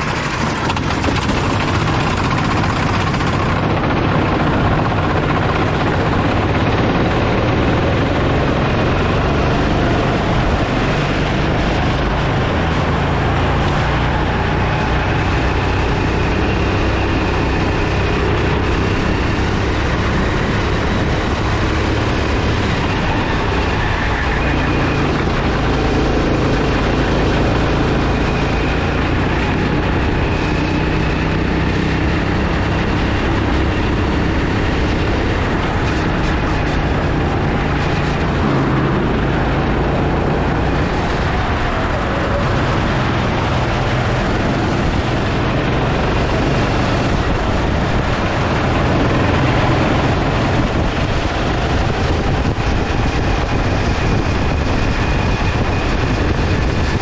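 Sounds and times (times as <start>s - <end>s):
go-kart engine running: 0.0s - 57.0s.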